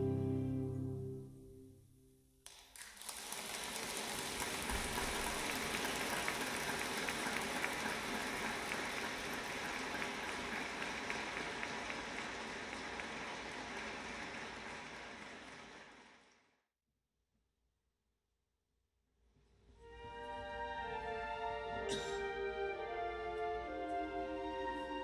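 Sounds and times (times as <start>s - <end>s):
audience applauding: 2.5s - 16.5s.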